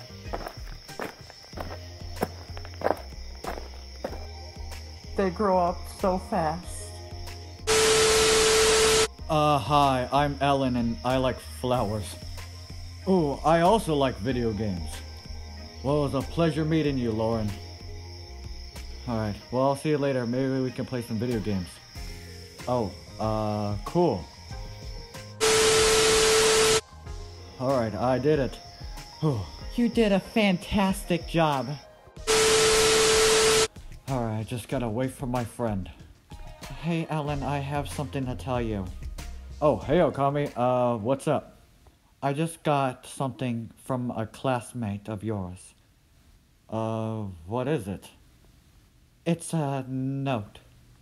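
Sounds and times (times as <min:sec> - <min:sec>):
footsteps walking: 0:00.0 - 0:04.3
background music: 0:00.0 - 0:41.1
burst of static hiss: 0:07.6 - 0:09.2, 0:25.2 - 0:27.0, 0:32.2 - 0:33.7
steady tone: 0:07.7 - 0:09.2, 0:25.4 - 0:26.9, 0:32.3 - 0:33.7.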